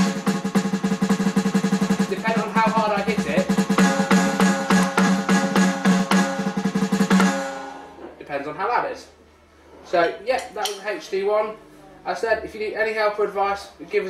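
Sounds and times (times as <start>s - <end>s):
electronic drum kit playing: 0.0s - 8.0s.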